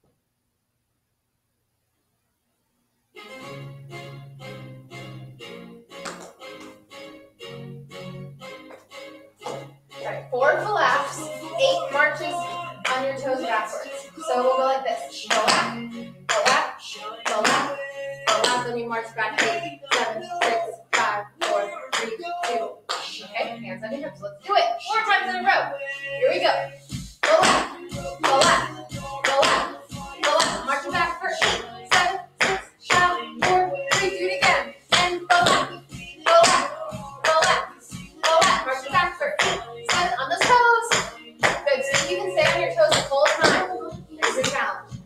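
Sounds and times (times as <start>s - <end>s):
background music: 3.2s - 45.0s
tap shoes clicking on hard floor: 6.0s - 6.8s, 42.9s - 43.6s
tap shoes on hard floor: 6.0s - 6.8s, 8.6s - 9.6s, 17.3s - 17.7s, 26.9s - 30.7s, 31.4s - 35.7s, 36.3s - 45.0s
woman counting: 9.4s - 45.0s.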